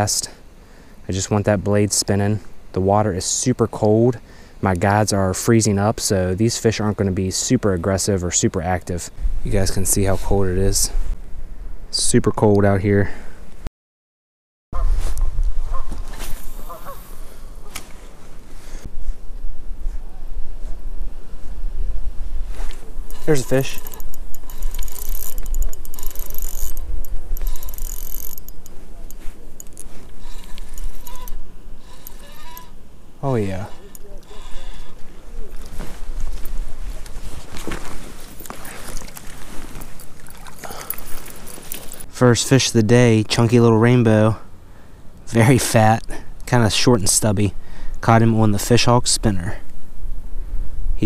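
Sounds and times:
honking bird calls: 16.6s - 17.7s, 30.2s - 32.8s, 33.4s - 35.0s
wind buffeting microphone: 18.3s - 32.5s
water and handling noises: 22.4s - 42.1s
fish splashing in water: 38.6s - 41.5s.

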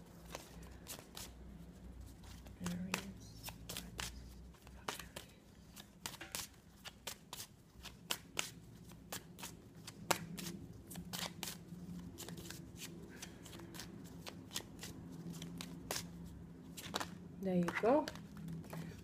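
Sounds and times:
cards shuffled by hand: 0.2s - 19.0s.

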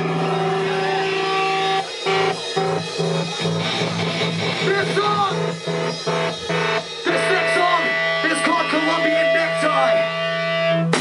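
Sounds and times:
distorted guitar and bass chord: 0.0s - 11.0s
stop-start guitar riffing: 0.0s - 11.0s.

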